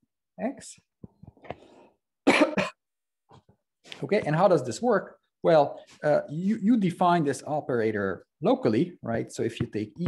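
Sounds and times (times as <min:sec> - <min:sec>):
person coughing: 0:02.2 - 0:02.8.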